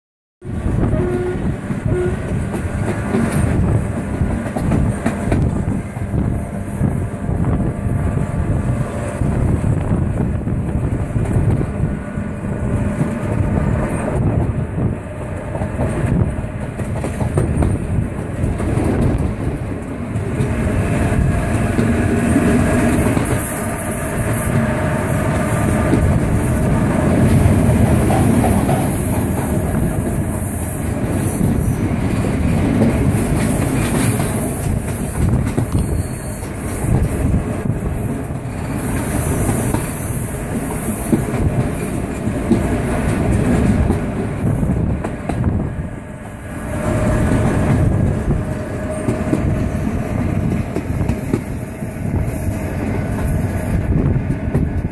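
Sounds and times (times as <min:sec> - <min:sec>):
train rumbling on rails: 0:00.4 - 0:54.9
wheels clacking over rail joints: 0:12.6 - 0:45.6.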